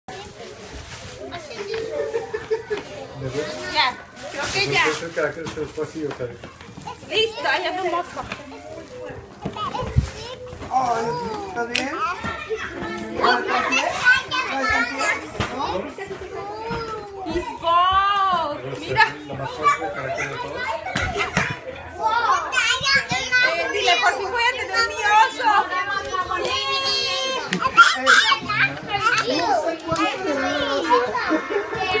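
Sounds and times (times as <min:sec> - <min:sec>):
young children chattering: 0:00.1 - 0:04.9, 0:06.4 - 0:32.0.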